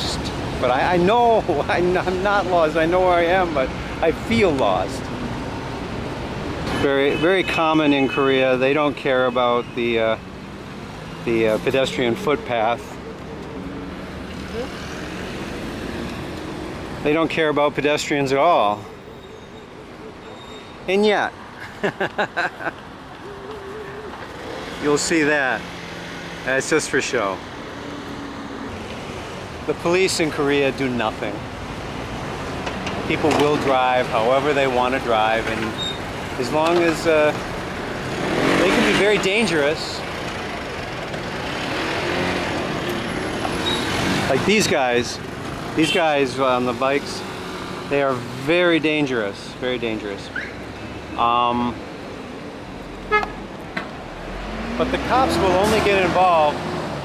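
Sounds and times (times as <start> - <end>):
busy road traffic: 0.0 - 57.0
vehicle engines running: 0.0 - 57.0.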